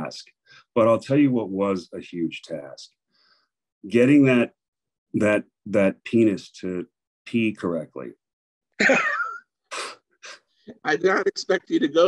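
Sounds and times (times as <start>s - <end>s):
man laughing: 8.8s - 9.4s.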